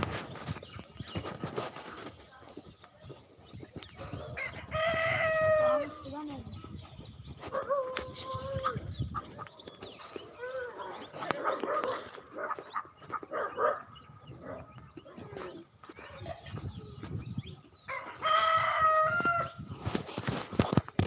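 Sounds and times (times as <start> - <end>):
chickens clucking: 3.0 - 13.4
rooster crowing: 17.9 - 19.6.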